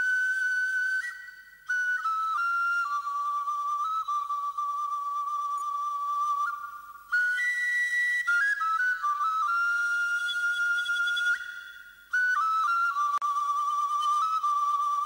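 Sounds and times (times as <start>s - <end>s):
solo flute-like melody: 0.0s - 15.0s.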